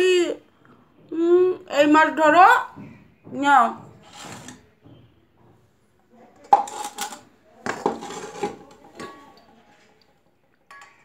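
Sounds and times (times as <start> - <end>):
metal bowl clanking: 6.4 - 11.0.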